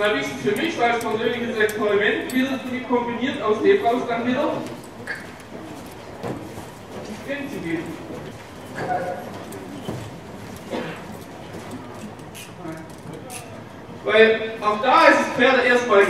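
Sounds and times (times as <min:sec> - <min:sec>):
man talking: 0:00.0 - 0:04.8, 0:07.1 - 0:08.1, 0:14.0 - 0:16.0.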